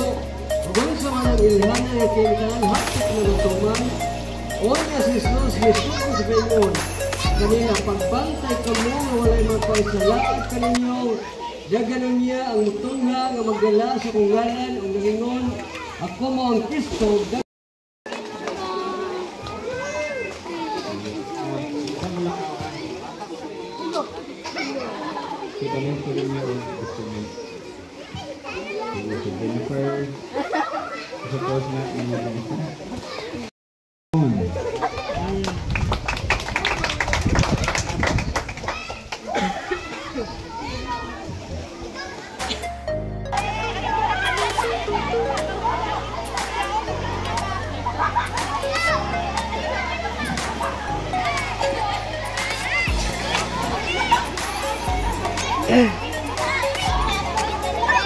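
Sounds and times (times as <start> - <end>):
background music with bass line: 0.0 - 10.8, 42.4 - 58.0
crowd of children and adults talking: 0.0 - 17.4, 18.1 - 33.5, 34.2 - 58.0.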